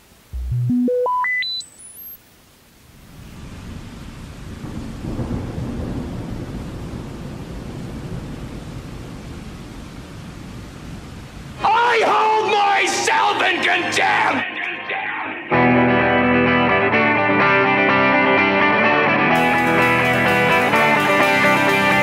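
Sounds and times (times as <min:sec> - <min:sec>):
rising electronic tones: 0:00.3 - 0:02.2.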